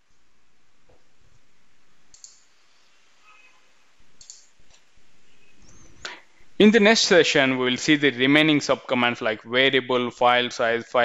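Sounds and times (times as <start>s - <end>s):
faint microphone hiss: 0.0s - 11.0s
computer mouse clicks: 2.1s - 2.5s, 4.2s - 4.8s.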